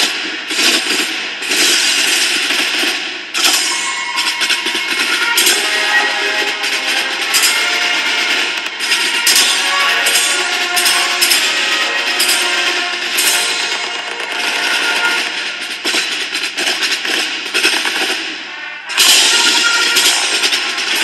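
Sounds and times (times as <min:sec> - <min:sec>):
marching band brass and drums: 0:00.0 - 0:21.0
quick repeated drum strokes: 0:00.0 - 0:21.0.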